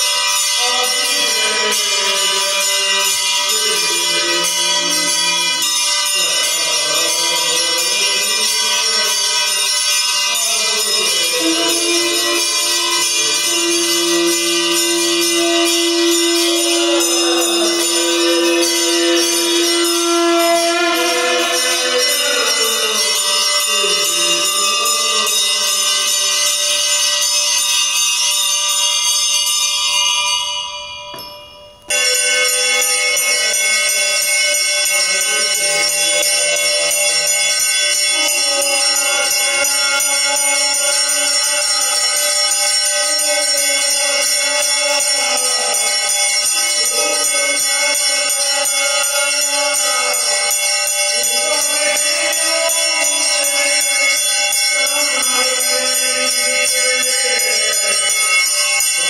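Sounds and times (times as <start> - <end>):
devotional music: 0.0 - 28.4
bells ringing: 0.0 - 59.0.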